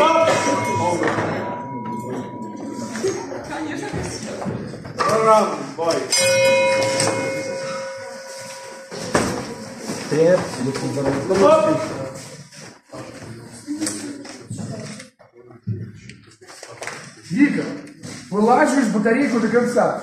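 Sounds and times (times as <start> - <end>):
people's voices: 0.0 - 19.4.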